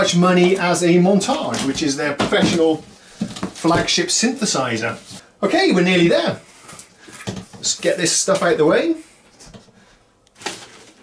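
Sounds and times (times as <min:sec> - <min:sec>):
packaging rustle: 0:10.4 - 0:11.0.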